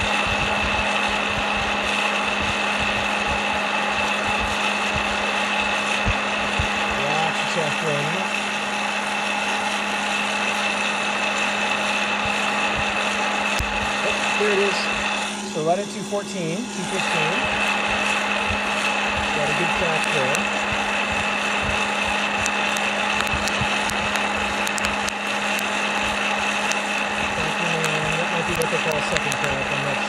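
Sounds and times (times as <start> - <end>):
sharp clicks: 0.0 - 7.0, 12.2 - 14.0, 17.0 - 29.8
popcorn popper fan whine: 0.0 - 30.0.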